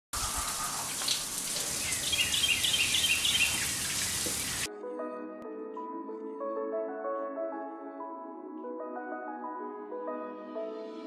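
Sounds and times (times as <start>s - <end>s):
bird singing: 0.2s - 4.7s
water pouring from shower head: 0.2s - 4.7s.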